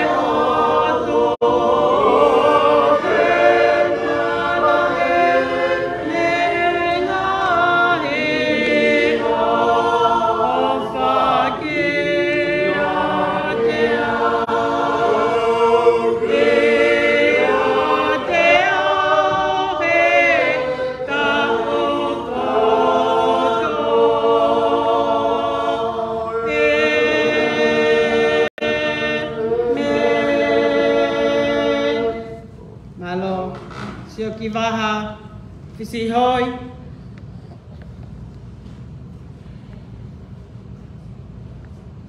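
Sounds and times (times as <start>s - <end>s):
choir singing a hymn unaccompanied: 0.0s - 33.8s.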